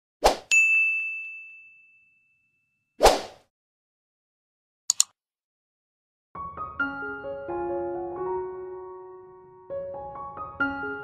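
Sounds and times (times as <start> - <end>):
short noisy swish: 3.0 - 3.4.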